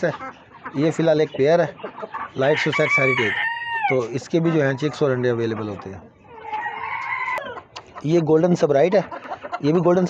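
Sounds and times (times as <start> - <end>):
rooster crowing: 2.5 - 4.0, 6.3 - 7.6.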